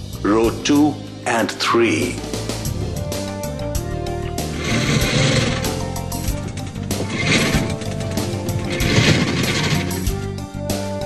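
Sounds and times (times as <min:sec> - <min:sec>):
background music sustained tones: 0:00.0 - 0:11.0
fast mechanical rattling: 0:04.3 - 0:10.4.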